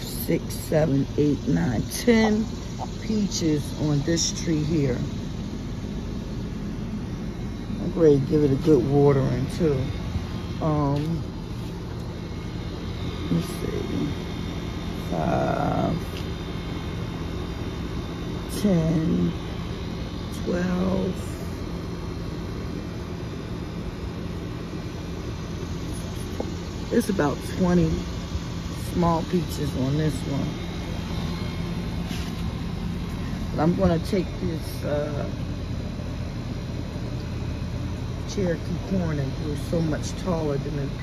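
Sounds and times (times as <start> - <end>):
low hum: 0.0 - 41.0.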